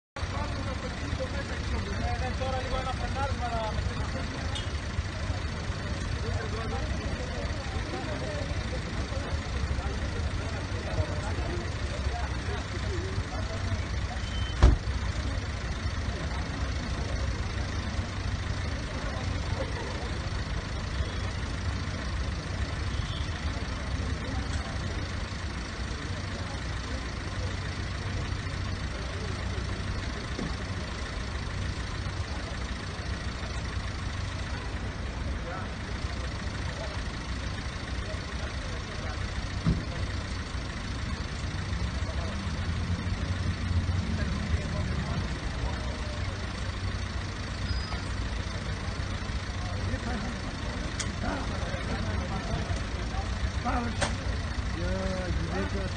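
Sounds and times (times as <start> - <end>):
murmur of voices: 0.2 - 55.9
vehicle engine idling: 0.2 - 55.9.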